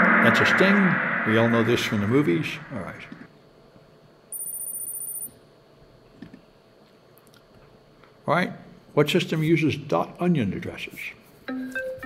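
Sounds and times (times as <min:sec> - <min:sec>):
high-pitched fluttering electronic tone: 0:00.0 - 0:03.2.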